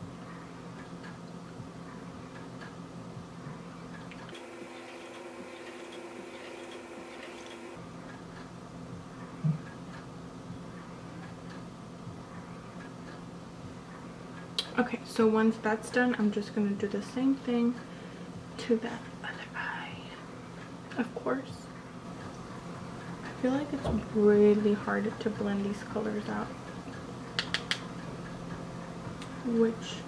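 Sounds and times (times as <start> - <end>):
steady low hum: 0.0 - 30.0
short thump: 23.8 - 24.1.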